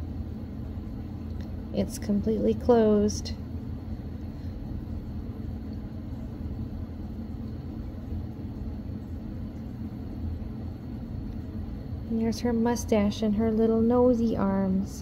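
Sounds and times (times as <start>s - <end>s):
low background rumble: 0.0s - 15.0s.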